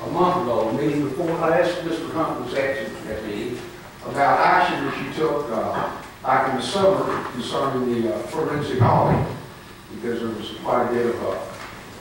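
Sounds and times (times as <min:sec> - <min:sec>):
man speaking into microphone: 0:00.0 - 0:11.6.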